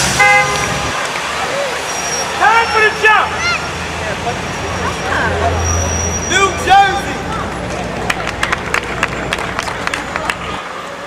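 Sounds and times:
street traffic noise: 0.0 - 11.0
vehicle horn toot: 0.1 - 0.9.

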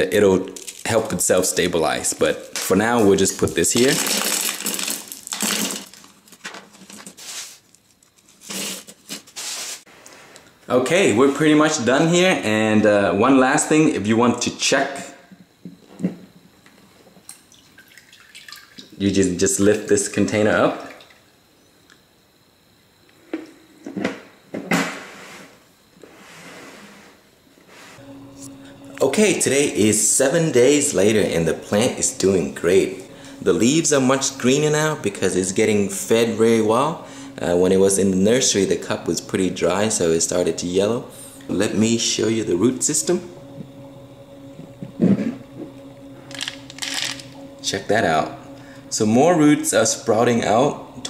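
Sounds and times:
clay pebbles clattering in plastic container: 3.5 - 7.2.

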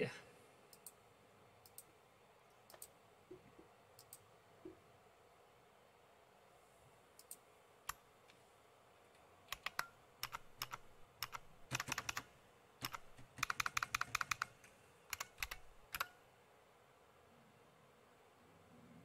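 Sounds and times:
typing on computer keyboard: 9.5 - 16.1.

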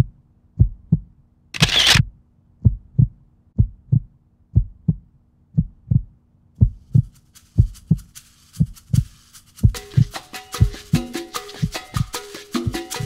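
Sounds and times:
low double thumps: 2.6 - 5.0.

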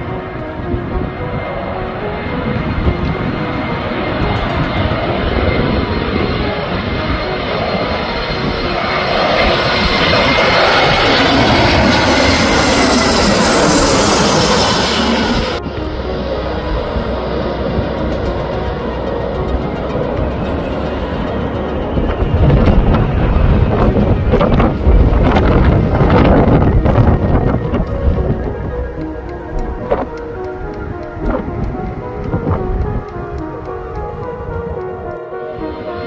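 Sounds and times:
jet engines passing overhead: 0.0 - 36.0.

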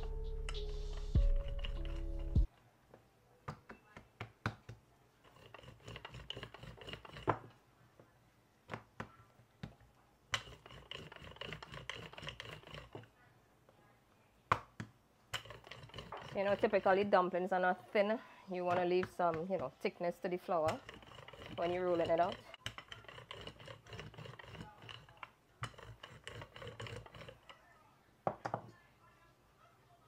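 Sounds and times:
background music: 0.0 - 2.5
rolling pin working dough: 0.5 - 2.5, 5.2 - 7.6, 9.6 - 13.1, 15.3 - 17.4, 18.6 - 27.6.

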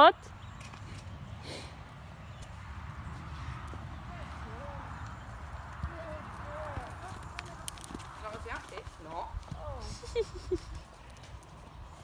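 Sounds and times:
hoofbeats on sand: 2.3 - 12.0.

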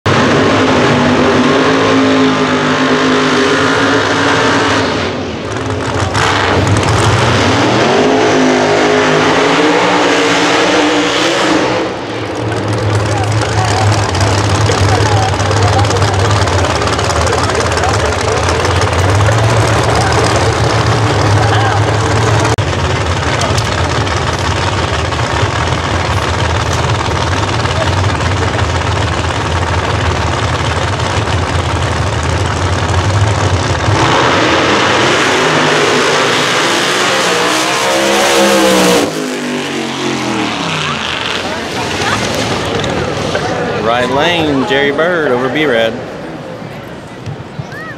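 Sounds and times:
car engines running at low speed: 0.0 - 47.9
car engine revving: 0.1 - 46.4.

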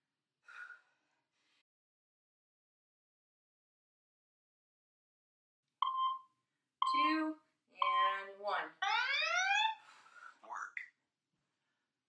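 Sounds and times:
timer short beeps: 5.8 - 7.2, 7.8 - 8.3.

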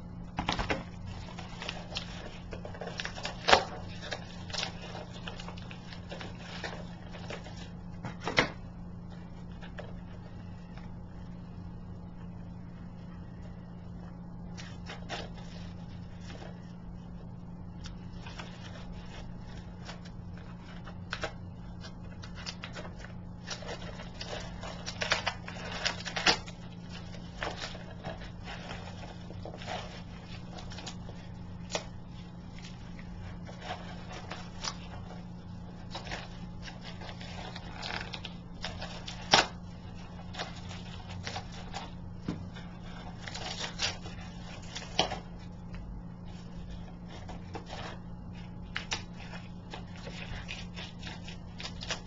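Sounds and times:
steady low hum: 0.0 - 52.0
packaging rustling and crinkling: 0.4 - 8.4, 18.0 - 52.0.

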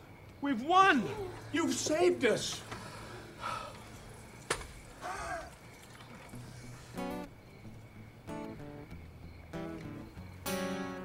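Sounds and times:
acoustic guitar chords strummed: 8.2 - 11.0.

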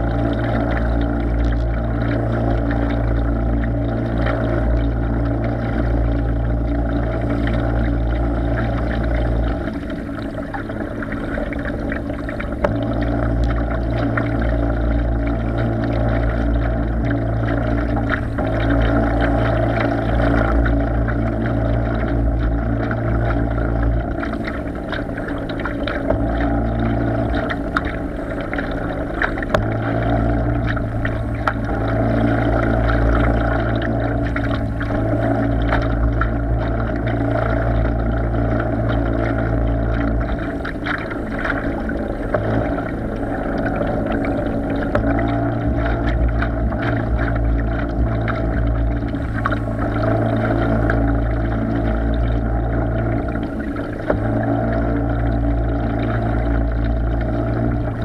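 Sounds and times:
boat motor humming: 0.0 - 58.0
water splashing against hull: 0.0 - 58.0.

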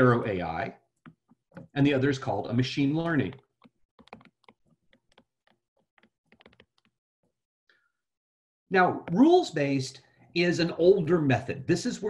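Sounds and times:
stylus ticking on tablet: 3.0 - 7.0.

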